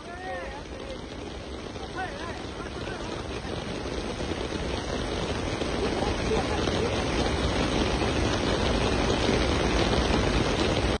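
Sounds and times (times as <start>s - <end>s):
surf washing on rocks: 0.0s - 11.0s
wind buffeting microphone: 0.0s - 11.0s.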